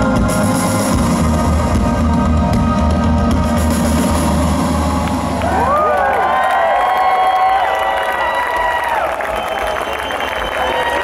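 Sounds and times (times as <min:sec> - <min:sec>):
synth-pop band sustained notes: 0:00.0 - 0:06.4
crowd whooping and cheering: 0:04.6 - 0:11.0.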